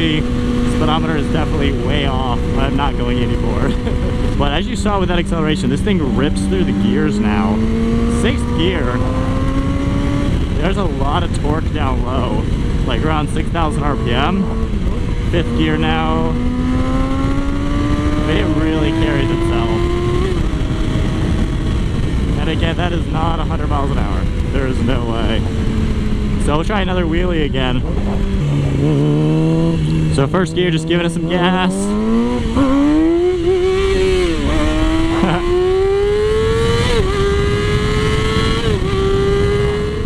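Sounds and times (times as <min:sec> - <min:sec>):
motorcycle engine running: 0:00.0 - 0:40.0
wind rushing over microphone: 0:00.0 - 0:40.0.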